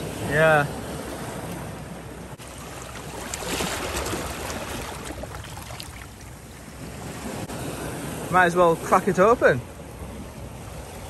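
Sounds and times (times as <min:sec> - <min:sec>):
water lapping over rocks: 0:02.4 - 0:07.5.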